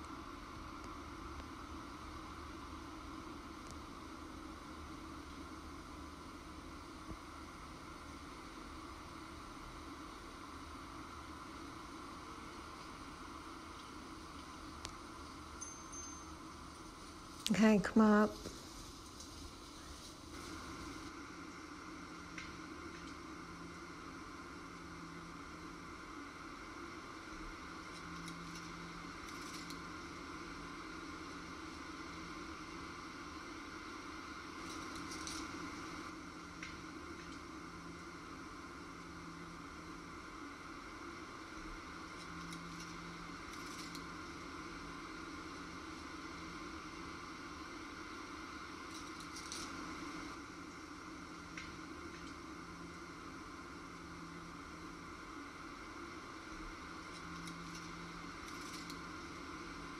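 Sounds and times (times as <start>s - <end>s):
faint background hiss: 0.0s - 59.9s
dry leaves rustling: 18.1s - 21.1s.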